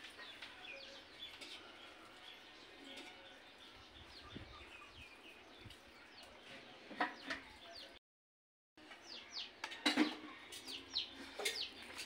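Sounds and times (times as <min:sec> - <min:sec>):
small birds chirping: 0:00.0 - 0:08.0, 0:08.8 - 0:12.0.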